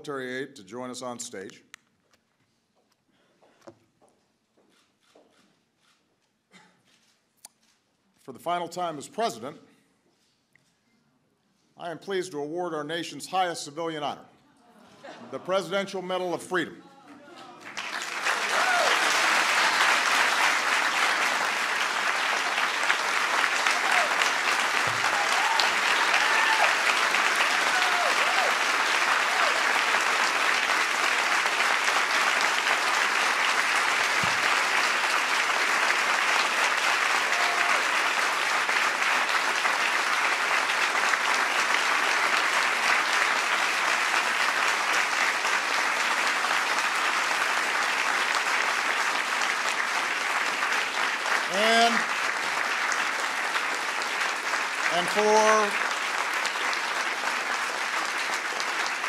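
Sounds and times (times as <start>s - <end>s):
audience applause: 17.1s - 59.0s.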